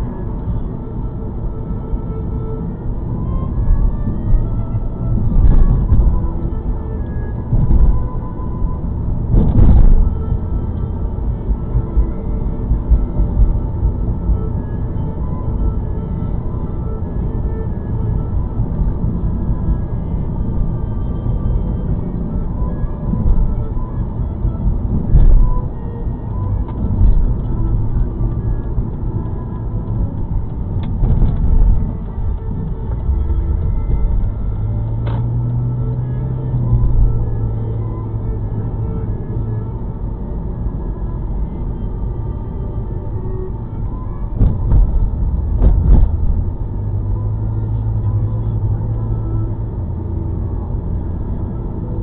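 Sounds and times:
car engine and tyres rumbling: 0.0 - 52.0
thumps: 44.4 - 46.5.

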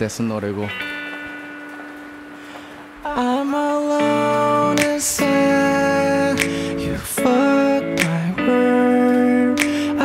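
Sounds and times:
guitar chord ringing: 0.6 - 10.0.

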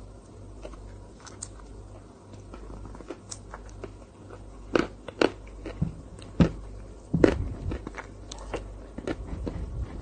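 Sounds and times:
chewing and mouth sounds: 0.6 - 10.0.

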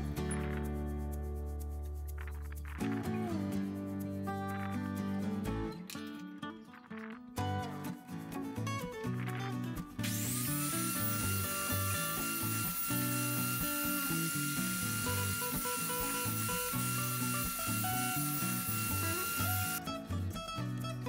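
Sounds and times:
background music with beat: 0.0 - 21.0
power saw motor whining: 10.0 - 19.8.

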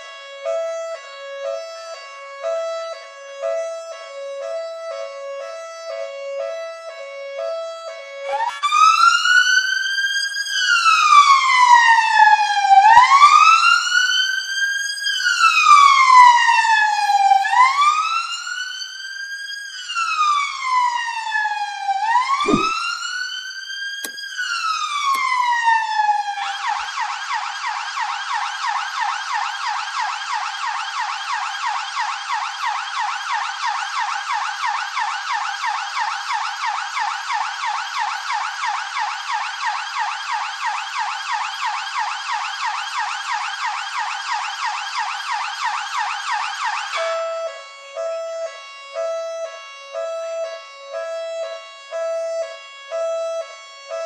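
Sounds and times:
police siren wailing and warbling: 2.5 - 14.1, 15.3 - 18.6, 20.0 - 23.4, 24.8 - 54.0.

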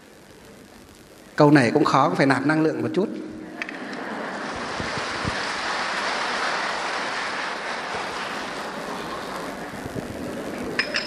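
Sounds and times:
audience applauding: 3.4 - 11.0.

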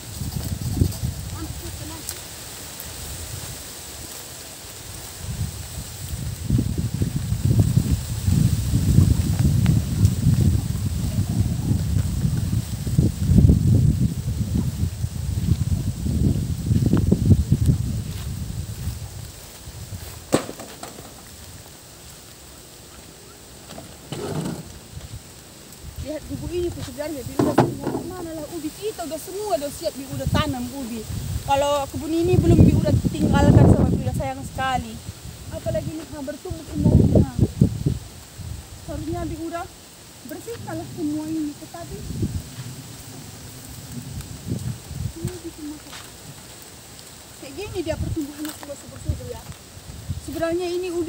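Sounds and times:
wind buffeting microphone: 0.0 - 20.4, 23.6 - 51.0.

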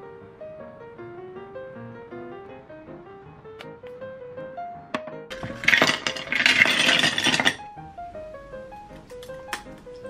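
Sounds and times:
ice clattering into a glass: 5.3 - 7.6.

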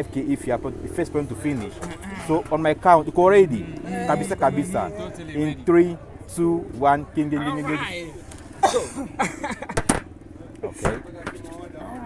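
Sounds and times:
low engine drone: 0.0 - 6.8
voices and exclamations: 1.4 - 6.4, 7.2 - 8.2.

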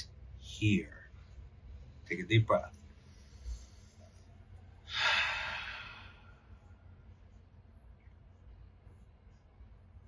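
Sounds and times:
man exhaling deeply: 4.9 - 6.3.

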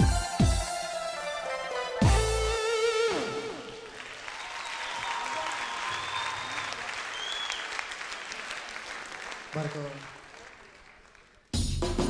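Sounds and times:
audience applauding: 3.1 - 11.5.

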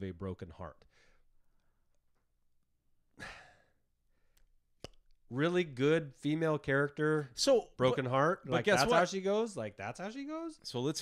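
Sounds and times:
man sighing: 3.1 - 3.8.

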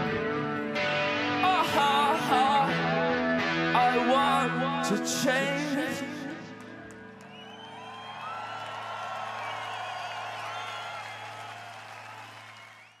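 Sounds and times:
crowd cheering and whistling: 6.6 - 13.0.

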